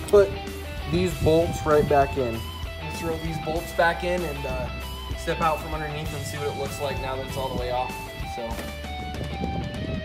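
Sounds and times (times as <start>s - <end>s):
background music with guitar: 0.0s - 10.0s.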